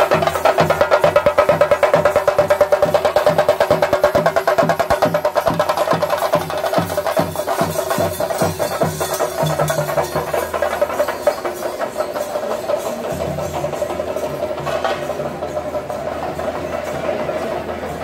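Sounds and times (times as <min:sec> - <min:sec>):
drums and cymbals: 0:00.0 - 0:18.0.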